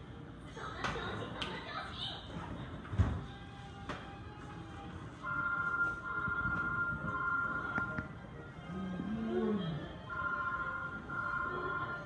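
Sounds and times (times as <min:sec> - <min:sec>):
electronic alarm beeping: 0:05.2 - 0:08.0, 0:10.1 - 0:12.0.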